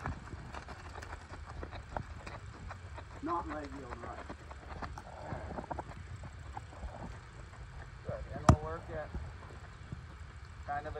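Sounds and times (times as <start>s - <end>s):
horse hooves on sand: 0.0s - 10.9s.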